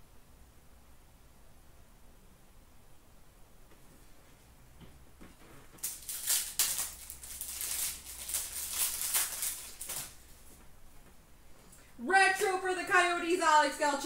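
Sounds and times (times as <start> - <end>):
wrapper tearing and crinkling: 5.8 - 10.2.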